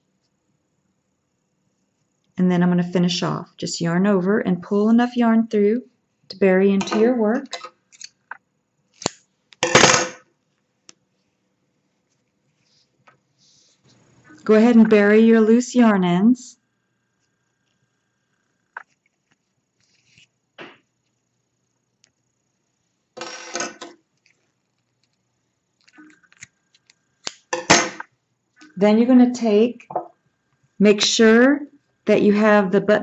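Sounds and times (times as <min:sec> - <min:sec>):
scissors handling clatter: 0:06.8 - 0:08.2
objects clattering: 0:09.6 - 0:10.2, 0:27.5 - 0:28.8.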